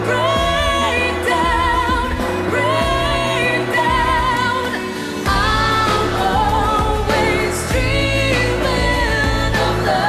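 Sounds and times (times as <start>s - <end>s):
woman singing pop song: 0.0s - 10.0s.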